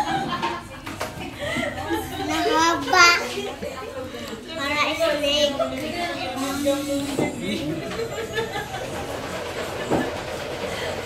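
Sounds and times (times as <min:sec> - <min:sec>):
cafe room background noise: 0:00.0 - 0:11.0.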